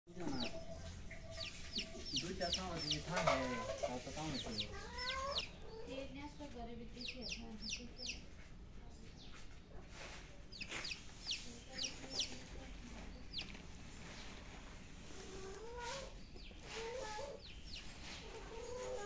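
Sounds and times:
chick peeping: 0.1 - 19.0.

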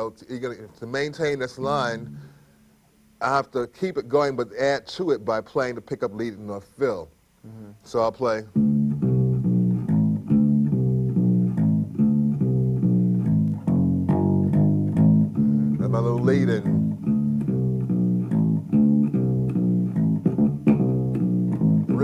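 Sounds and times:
electric bass walking line: 8.5 - 22.0.

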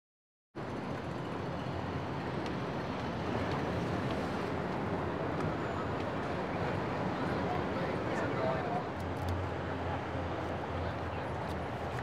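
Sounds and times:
city traffic noise: 0.6 - 12.0.

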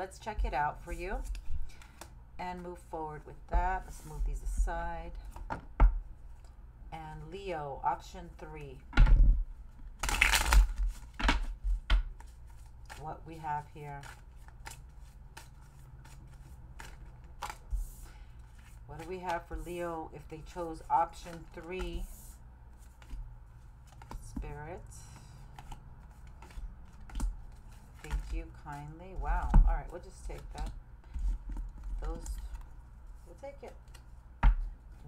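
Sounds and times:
cards being shuffled: 10.0 - 19.8, 20.5 - 24.4, 25.2 - 35.0.

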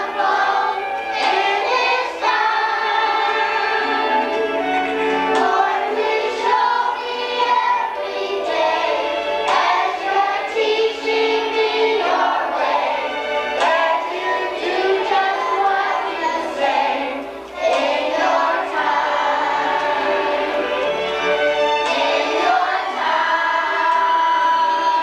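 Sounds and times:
children's choir singing: 0.0 - 25.0.

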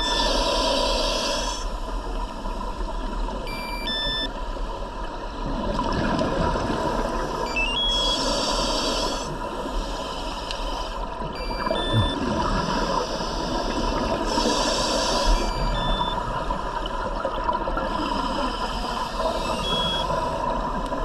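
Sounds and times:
faint high beeps: 0.0 - 0.3, 3.5 - 4.4, 7.5 - 8.3, 11.4 - 12.3, 15.2 - 16.3, 19.3 - 20.2
steady underwater rush: 4.6 - 21.0
regulator bubbles exhaled: 11.4 - 14.4.

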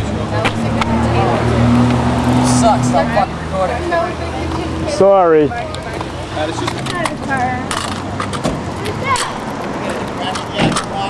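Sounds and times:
scattered voices: 0.0 - 11.0.

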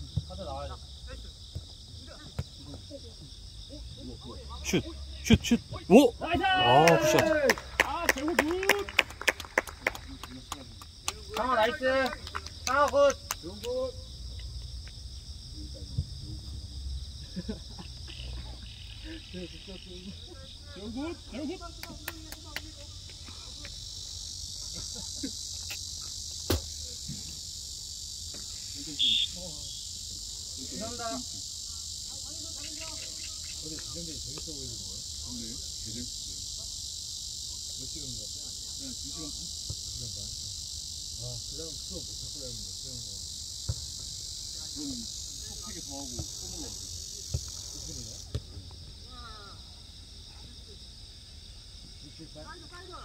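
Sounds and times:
cicadas buzzing: 0.0 - 53.0
distant shouts: 3.7 - 9.3, 28.7 - 29.8
sharp thuds: 26.4 - 27.3
brief high whistle: 28.9 - 29.4.

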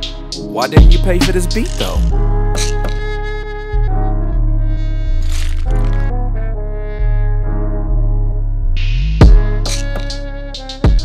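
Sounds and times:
deep bass notes: 0.0 - 11.0.

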